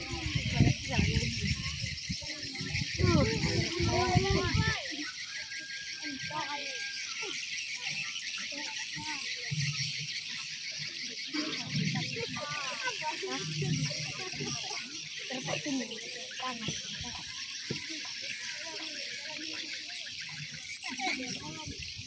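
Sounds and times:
indistinct chatter: 0.0 - 22.0.

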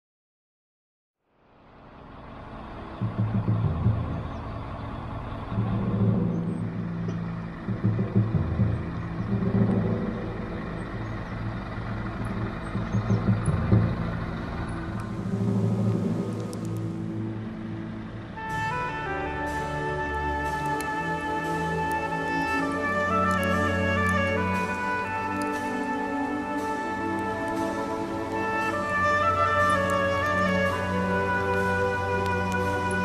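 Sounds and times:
lorry diesel engine pulling: 1.3 - 33.0
gentle string music: 1.4 - 33.0.

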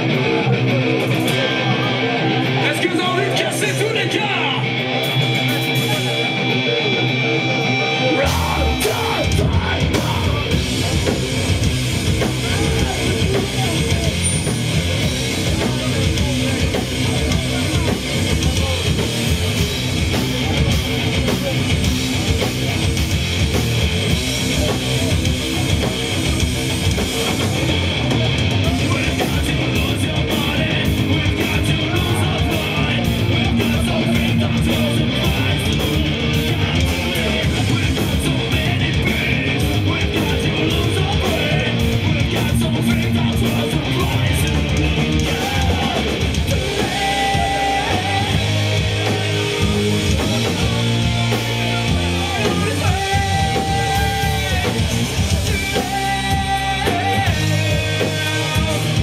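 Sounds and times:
drums steady beat: 0.0 - 59.0
metal band playing live: 0.0 - 59.0.

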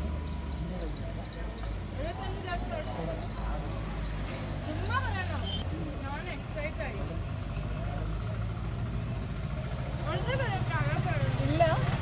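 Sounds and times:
vehicle engine idling: 0.0 - 12.0
people talking: 4.7 - 7.0, 10.0 - 12.0.

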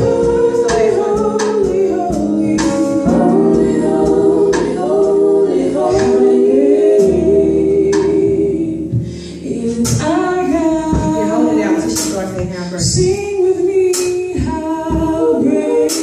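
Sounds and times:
women singing gospel in harmony: 0.0 - 16.0.

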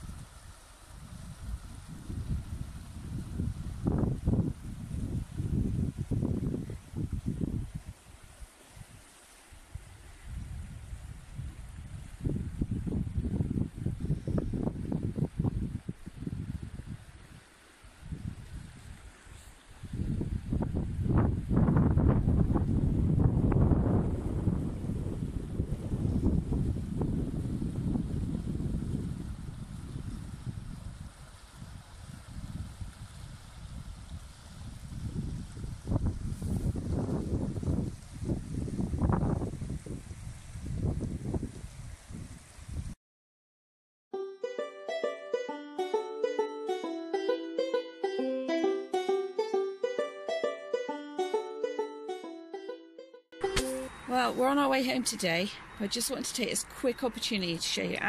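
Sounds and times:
wind buffeting microphone: 0.0 - 9.0, 9.7 - 17.4, 18.0 - 19.1, 19.8 - 43.0
river running over gravel: 6.9 - 12.0.

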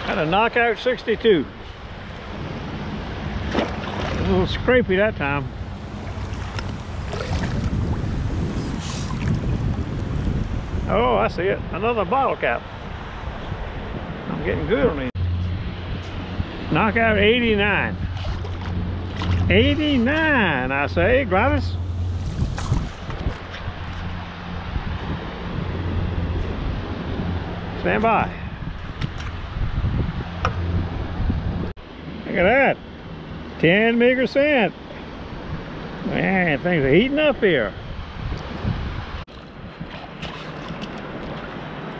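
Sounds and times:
wind rumbling on microphone: 0.0 - 32.2, 34.8 - 41.9
water sloshing: 2.0 - 4.6, 5.5 - 9.7, 17.9 - 20.5, 21.8 - 24.6, 39.3 - 41.9.

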